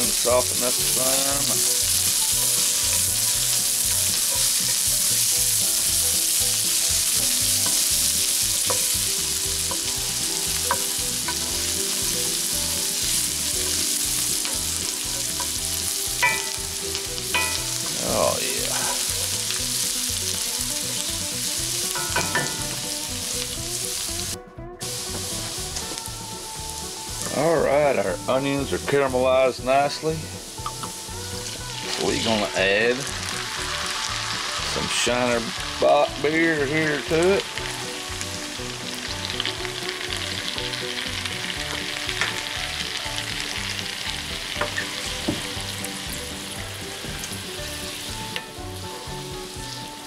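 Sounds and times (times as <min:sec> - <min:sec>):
onions sizzling in a skillet: 0:00.0 - 0:50.0.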